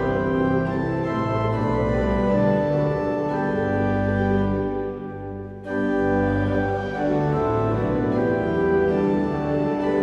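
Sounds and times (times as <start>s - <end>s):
pipe organ playing hymn: 0.0s - 10.0s.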